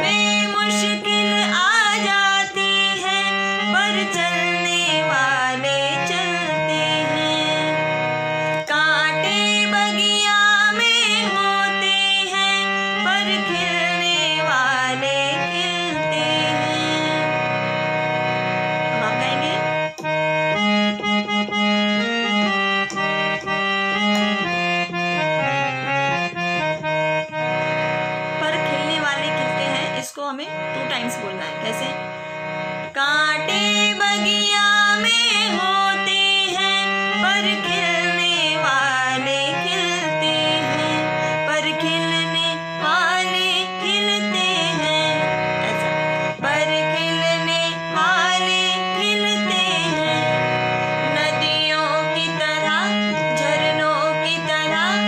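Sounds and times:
woman singing: 0:00.0 - 0:17.8, 0:18.8 - 0:19.9, 0:28.3 - 0:32.2, 0:32.8 - 0:55.0
harmonium playing melody: 0:00.0 - 0:55.0.

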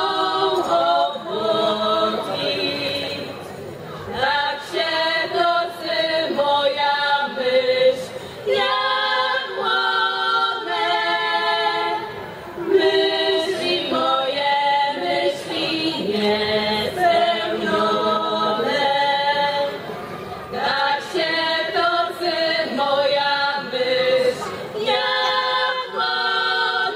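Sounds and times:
women singing in harmony: 0:00.0 - 0:19.9, 0:20.5 - 0:26.9.

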